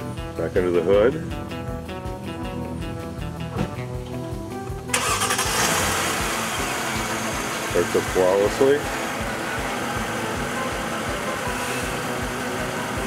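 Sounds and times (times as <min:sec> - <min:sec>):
background music with steady beat: 0:00.0 - 0:13.0
car engine starting and running: 0:01.3 - 0:13.0.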